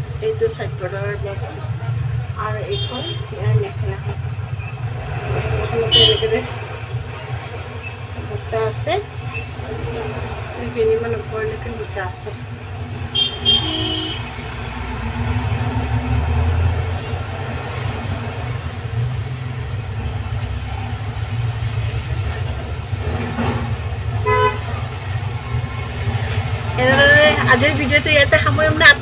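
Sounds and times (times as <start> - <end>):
traffic engine rumble: 0.0 - 29.0
car horn toots: 2.7 - 3.3, 5.9 - 6.3, 13.1 - 14.4, 24.2 - 24.8.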